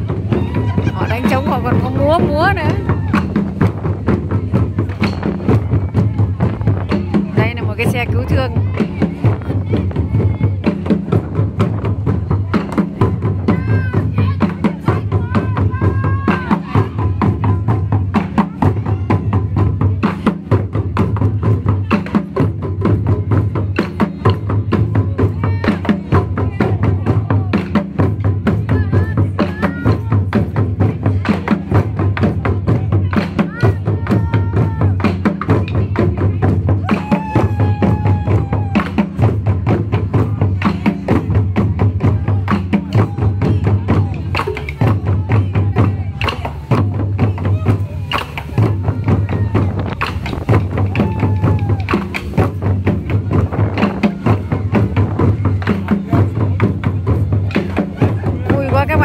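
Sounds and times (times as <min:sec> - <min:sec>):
taiko drums beaten fast: 0:00.0 - 0:59.0.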